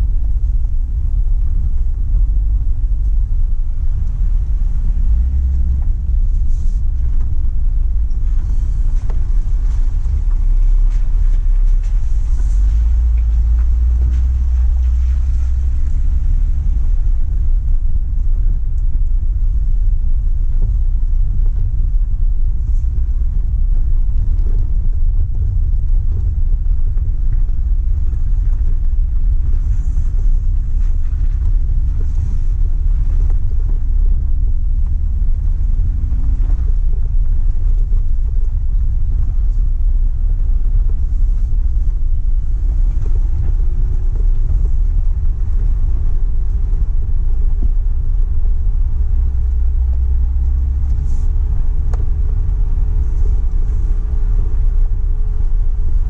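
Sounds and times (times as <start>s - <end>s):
off-road vehicle rumbling on gravel: 0.0s - 56.0s.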